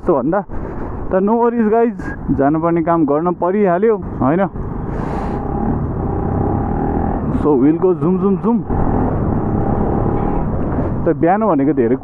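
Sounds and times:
wind and road noise: 0.0 - 12.0
motorcycle engine running: 4.6 - 10.8.

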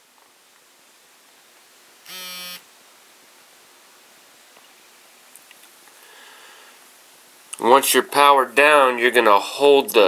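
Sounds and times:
faint room hiss: 0.0 - 10.0
tablet buzz: 2.0 - 2.7.

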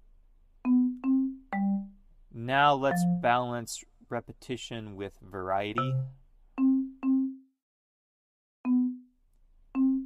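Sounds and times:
marimba notes: 0.6 - 2.0, 2.8 - 3.4, 5.8 - 7.4, 8.7 - 9.1, 9.7 - 10.0.

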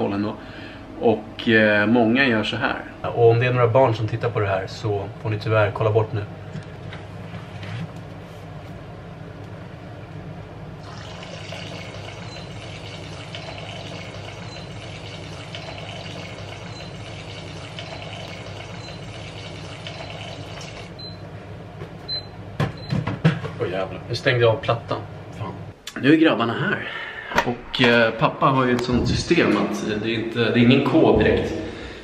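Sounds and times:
steady low hum: 0.0 - 26.0, 26.8 - 32.0
wine pouring into a pot: 10.8 - 20.9.

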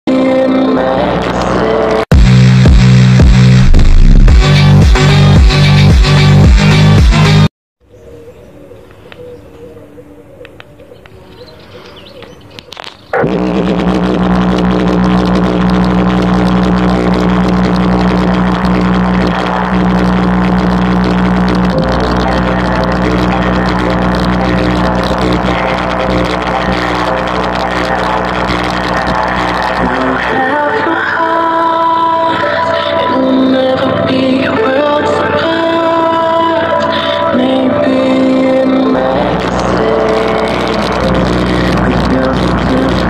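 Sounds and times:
bass-boosted pop song on speaker: 0.1 - 7.5, 13.2 - 43.0.

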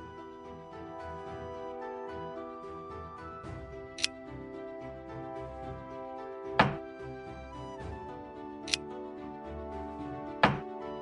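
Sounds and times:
background music held tones: 0.0 - 11.0.

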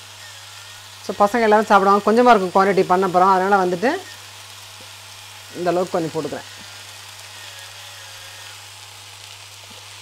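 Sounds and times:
leaves sizzling in a pan: 0.0 - 10.0
pepper mill grinding: 0.0 - 10.0.

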